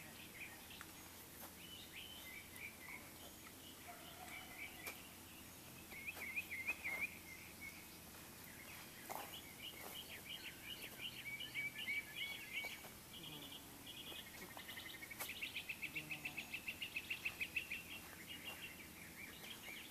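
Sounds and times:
songbirds singing: 0.0 - 19.9.

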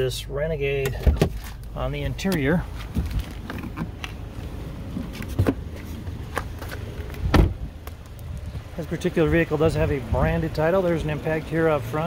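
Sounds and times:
low steady rumble: 0.0 - 12.0
car door creaks and knocks: 0.9 - 1.6, 4.9 - 7.7.

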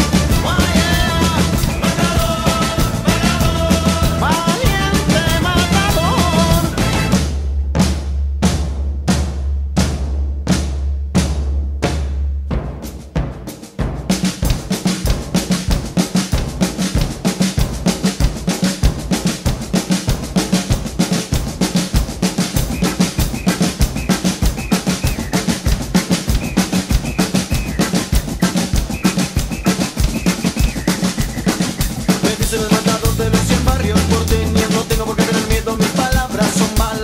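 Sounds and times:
drum kit played fast: 0.0 - 37.0.

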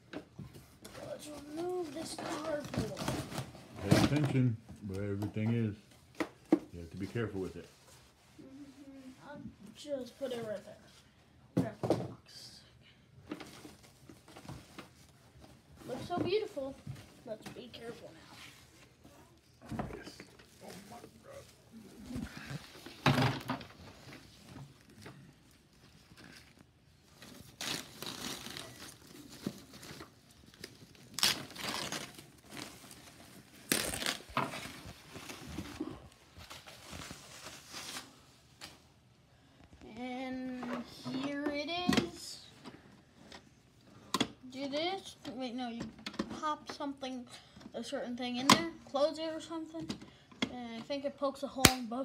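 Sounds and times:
child's voice: 0.9 - 3.4, 8.4 - 11.0, 15.8 - 18.5, 39.8 - 42.6, 44.4 - 52.0.

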